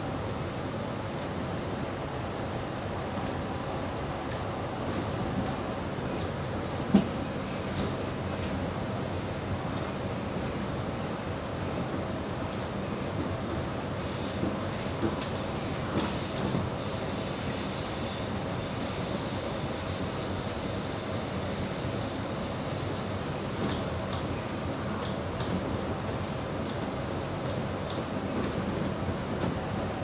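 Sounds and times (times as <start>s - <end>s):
train carriage rumbling on rails: 0.0s - 30.0s
continuous high squeal: 14.0s - 24.7s.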